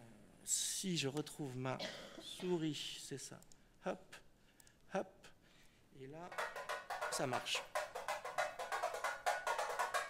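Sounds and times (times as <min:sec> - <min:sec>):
tamborim struck with a stick: 0:06.3 - 0:10.0.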